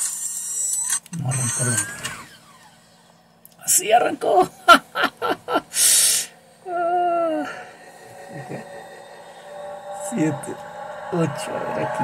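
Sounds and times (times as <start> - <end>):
faint steady low hum: 1.0 - 12.0
man speaking: 1.2 - 2.0, 6.8 - 8.9, 10.0 - 12.0.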